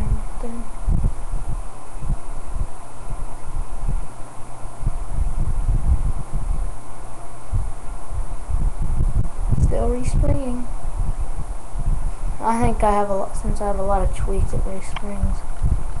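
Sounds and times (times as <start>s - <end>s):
microphone handling rumble: 0.0s - 16.0s
steady low hum: 0.0s - 16.0s.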